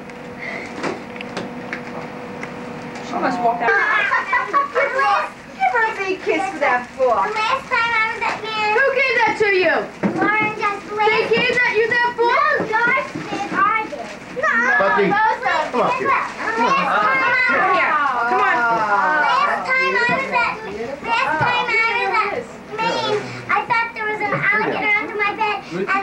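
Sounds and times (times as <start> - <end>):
young children chattering: 3.0 - 26.0.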